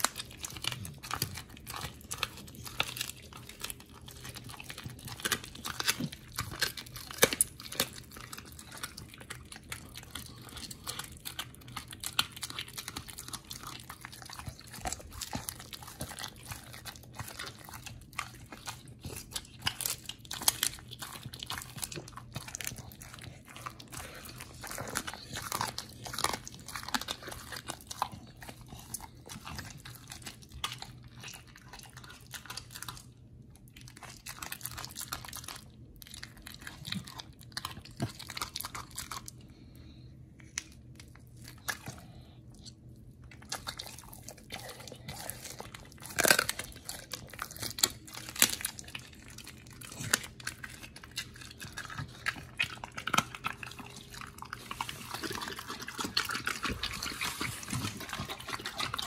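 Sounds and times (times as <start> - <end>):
dog chewing and crunching meat: 0.0 - 59.0.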